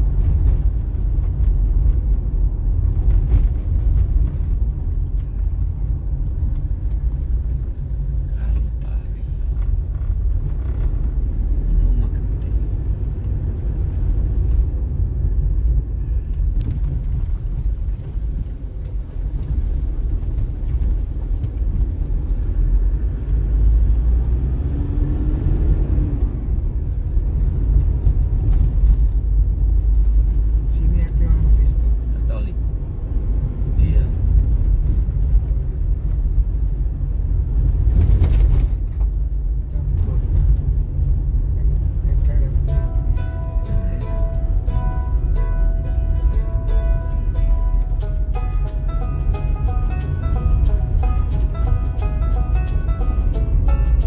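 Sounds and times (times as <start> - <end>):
wind buffeting microphone: 0.0 - 30.7, 31.4 - 54.0
vehicle rumbling along road: 0.0 - 54.0.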